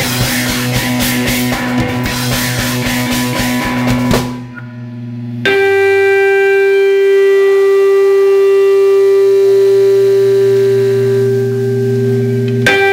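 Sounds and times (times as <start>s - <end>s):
electronic keyboard buzzing drone: 0.0s - 12.9s.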